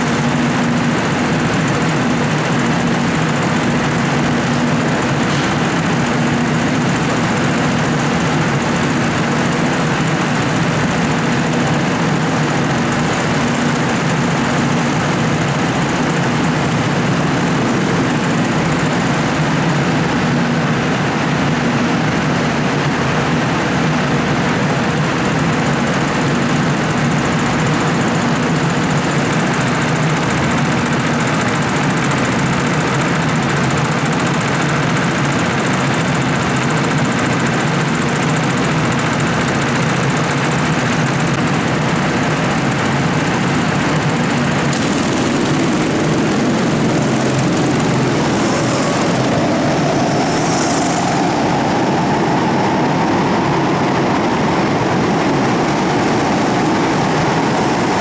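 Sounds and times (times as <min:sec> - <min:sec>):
go-kart engines racing: 0:00.0 - 0:58.0.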